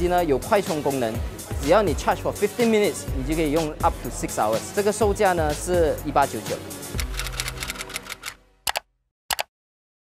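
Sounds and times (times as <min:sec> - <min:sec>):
fast run of clicks: 0:07.0 - 0:09.5.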